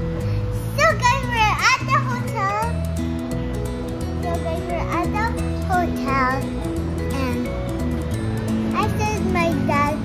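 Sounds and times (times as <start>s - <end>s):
upbeat background music: 0.0s - 10.0s.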